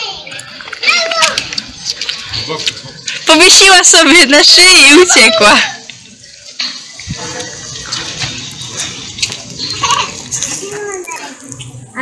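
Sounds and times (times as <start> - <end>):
faint background voices: 5.1 - 12.0.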